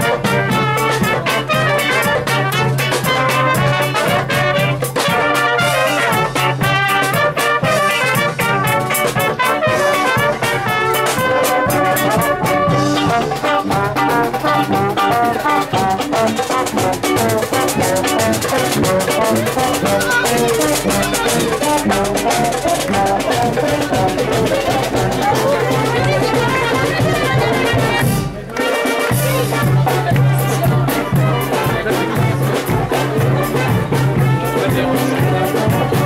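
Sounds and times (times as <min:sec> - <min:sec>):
marching drum: 0:00.0 - 0:36.0
saxophone: 0:00.0 - 0:36.0
trombone: 0:00.0 - 0:36.0
trumpets: 0:00.0 - 0:36.0.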